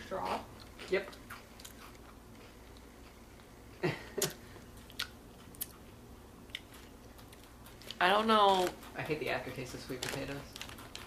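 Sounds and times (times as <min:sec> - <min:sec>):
chewing and crunching snack: 0:00.0 - 0:11.0.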